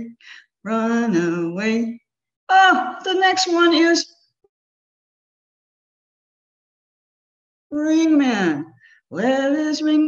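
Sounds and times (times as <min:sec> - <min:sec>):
woman's voice: 0:02.5 - 0:04.0.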